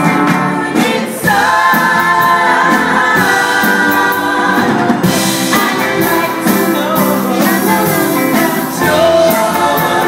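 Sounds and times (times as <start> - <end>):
live band playing soul music: 0.0 - 10.0
female vocal trio singing: 0.4 - 10.0.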